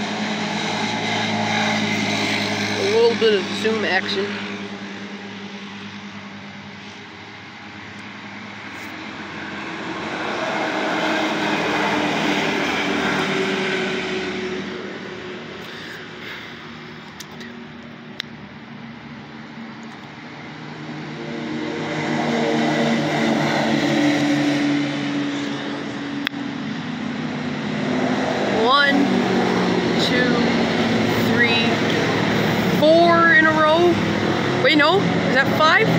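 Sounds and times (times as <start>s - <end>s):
utv engines driving past: 0.0s - 35.9s.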